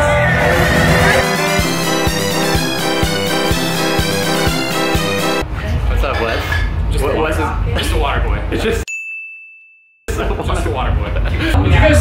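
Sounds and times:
bell-like ding: 8.9 - 10.0.

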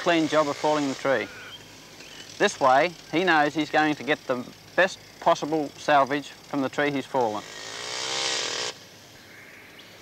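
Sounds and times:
chainsaw engine running at high revs: 0.0 - 9.0.

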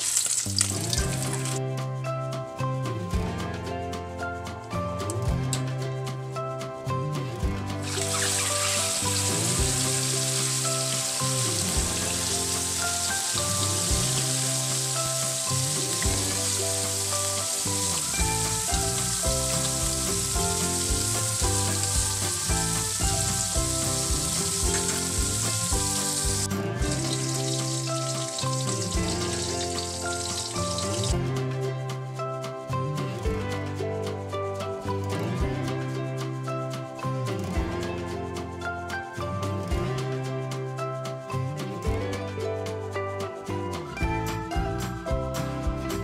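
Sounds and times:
fish sizzling in hot oil: 0.0 - 1.6, 7.8 - 31.1
background music: 0.0 - 46.0.

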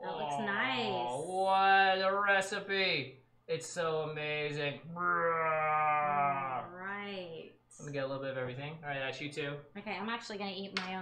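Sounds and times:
person's held wavering vocal note: 4.9 - 6.7.

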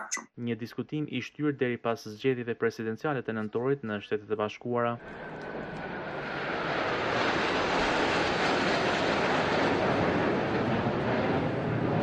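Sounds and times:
jet flyover rushing: 5.0 - 12.0.

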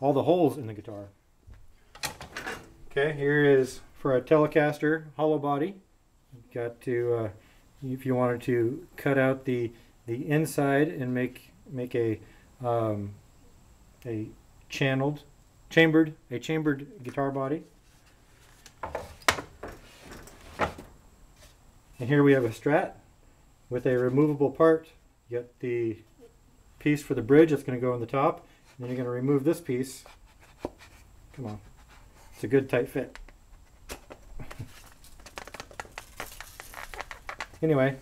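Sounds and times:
light scraping and shuffling: 17.0 - 21.6, 23.8 - 24.4, 28.6 - 38.0.

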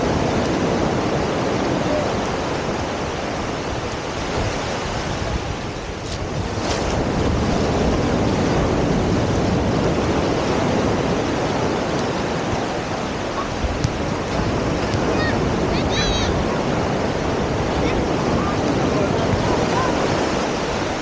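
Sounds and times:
ocean surf breaking: 0.0 - 21.0
wind noise on microphone: 0.0 - 21.0.

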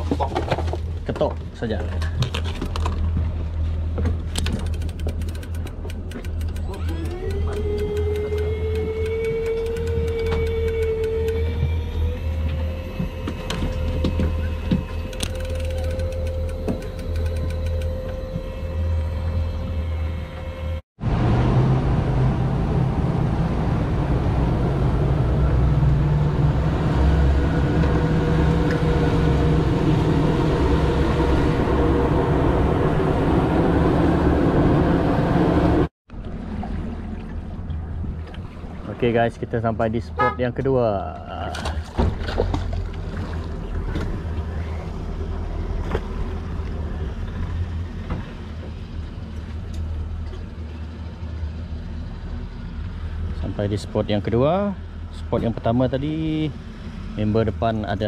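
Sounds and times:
fishing reel motor whining: 6.4 - 13.9, 14.5 - 19.9
water rushing past hull: 36.1 - 39.4, 41.5 - 52.2.

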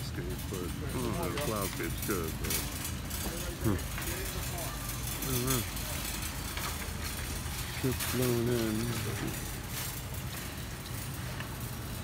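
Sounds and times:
distant vehicle noise: 0.0 - 12.0.

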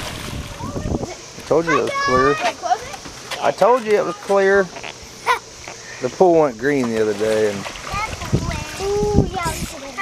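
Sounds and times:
water splashing in pool: 0.0 - 10.0
children's voices: 0.5 - 3.1, 7.8 - 10.0.

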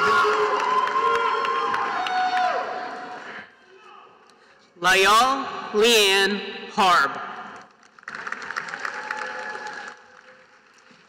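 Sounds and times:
audience applauding: 0.0 - 3.0, 7.6 - 11.0.

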